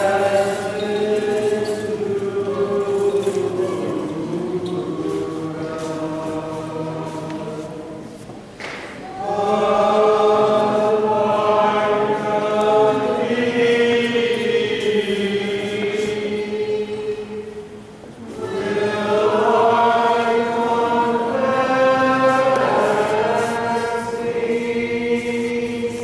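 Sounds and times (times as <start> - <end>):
choir chanting a hymn: 0.0 - 26.0.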